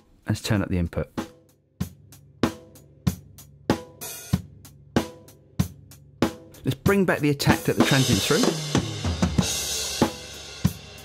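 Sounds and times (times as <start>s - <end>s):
kick and snare drum beat: 1.2s - 11.0s.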